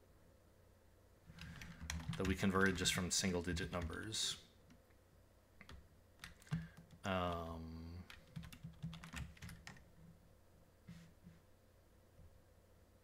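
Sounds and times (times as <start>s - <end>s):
keyboard keystrokes: 1.4s - 3.0s, 5.6s - 7.5s, 8.1s - 9.8s.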